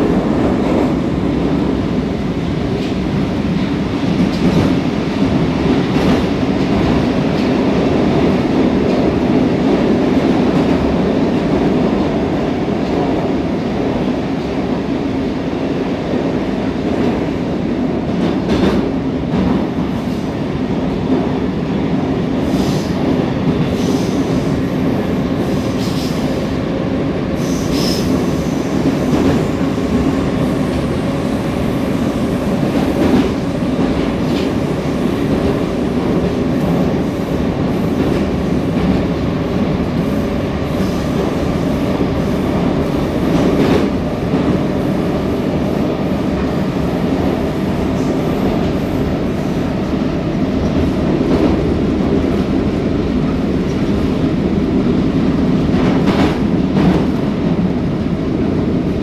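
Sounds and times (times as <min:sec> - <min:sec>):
train wheels rumbling on rail: 0:00.0 - 0:59.0.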